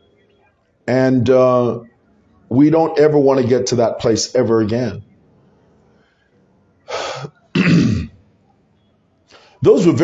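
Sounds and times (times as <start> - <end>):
man clearing his throat: 7.5 - 8.2.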